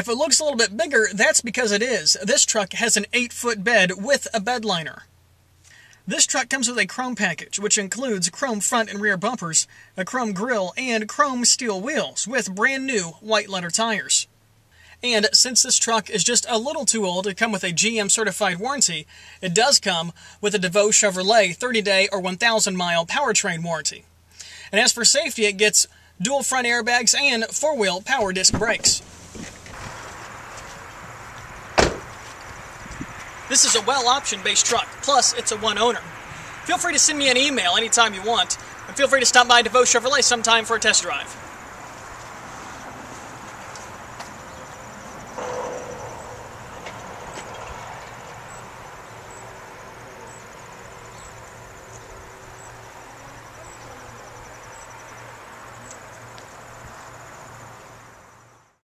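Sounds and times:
steady hiss: 28.3 - 58.6
car door slamming shut: 28.4 - 30.3, 31.7 - 32.4
faint high chirp: 44.4 - 46.6.

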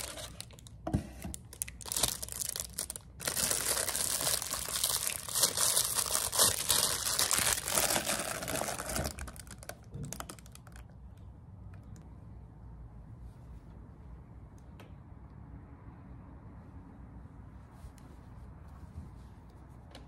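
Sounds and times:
plastic bag crinkling: 0.0 - 10.9.

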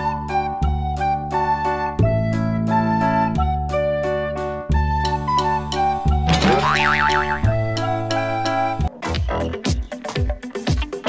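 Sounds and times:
background music with keyboard and bass: 0.0 - 11.0
cartoon boing sound effect: 6.3 - 7.7.

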